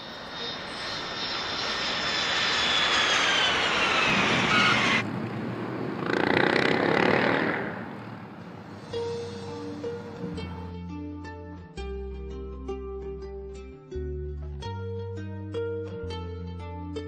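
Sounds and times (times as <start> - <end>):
whine falling in pitch: 0.0 - 5.1
aircraft engine passing: 0.0 - 10.7.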